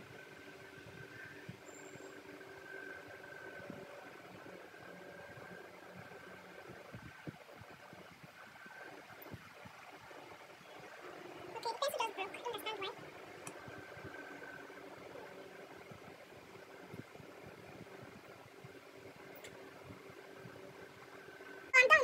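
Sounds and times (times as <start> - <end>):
faint steady tones: 0.0 - 22.0
mechanical hum: 0.0 - 22.0.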